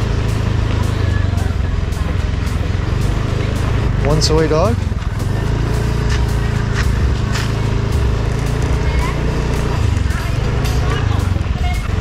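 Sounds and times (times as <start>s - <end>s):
small motorbike engine running: 0.0s - 12.0s.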